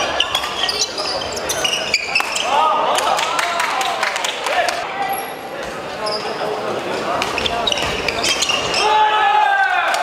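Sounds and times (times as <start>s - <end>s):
shoe squeaks on court floor: 0.0s - 2.6s, 5.1s - 6.6s, 7.2s - 9.0s
players' voices: 0.0s - 10.0s.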